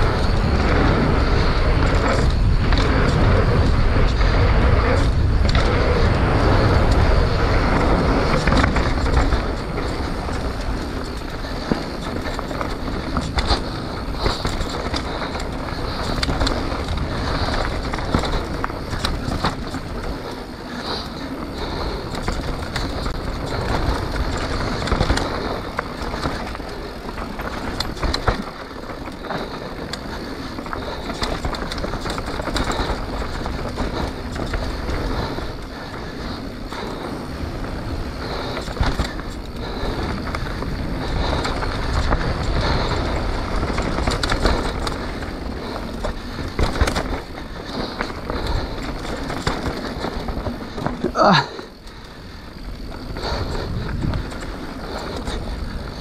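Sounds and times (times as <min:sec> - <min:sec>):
bike rattles and knocks: 0:00.0 - 0:56.0
bike tyres on dirt: 0:00.0 - 0:56.0.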